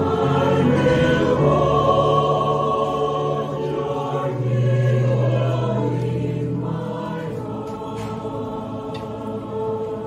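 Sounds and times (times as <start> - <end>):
mixed choir singing: 0.0 - 10.0.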